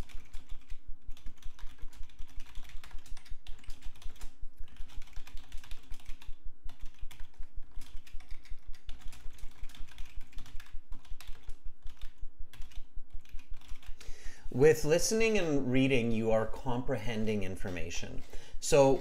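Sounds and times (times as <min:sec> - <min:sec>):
keyboard typing: 0:00.0 - 0:19.0.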